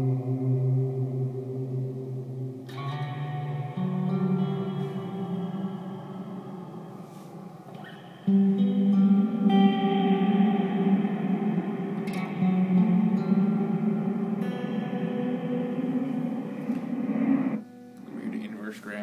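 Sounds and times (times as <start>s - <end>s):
guitar with washy reverb: 0.0s - 19.0s.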